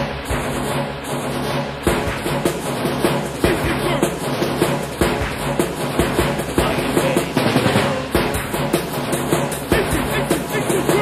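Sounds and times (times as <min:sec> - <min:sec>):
rave music with breakbeat drums: 0:00.0 - 0:11.0.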